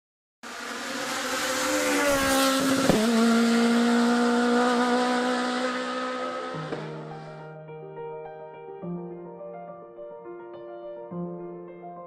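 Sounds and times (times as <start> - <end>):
rally car engine at high revs: 0.4 - 7.2.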